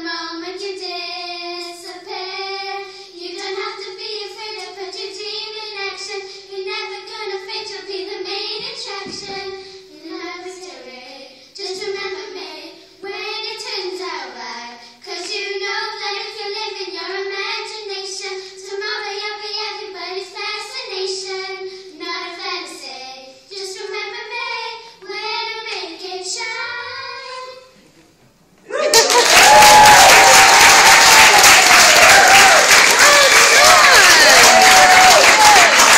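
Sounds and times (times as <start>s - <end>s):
girls singing in unison: 0.0s - 27.5s.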